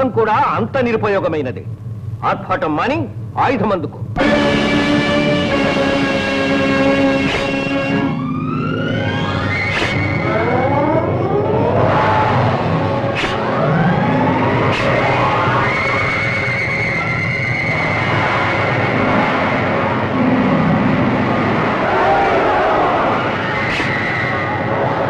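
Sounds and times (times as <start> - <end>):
background music: 4.1 - 25.0
rising whistling sweeps: 7.4 - 19.7
sharp cracks: 9.6 - 10.2.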